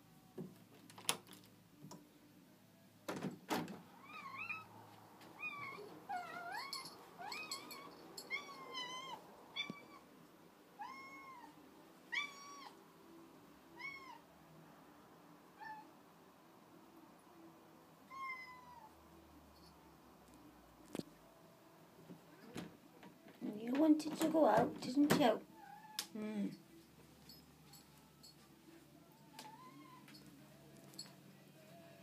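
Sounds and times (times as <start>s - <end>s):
cat meowing: 4.0s - 4.7s, 5.4s - 10.1s, 10.8s - 12.8s, 13.7s - 14.3s, 15.6s - 15.9s, 18.1s - 19.0s, 29.4s - 30.1s.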